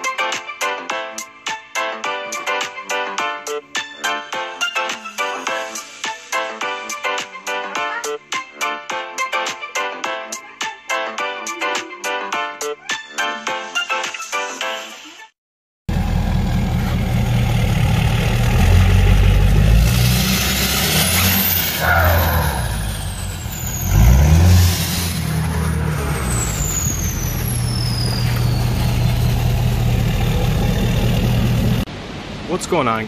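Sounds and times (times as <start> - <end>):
diesel engine revving: 15.9 - 32.5
high whistles falling in pitch: 26.0 - 29.9.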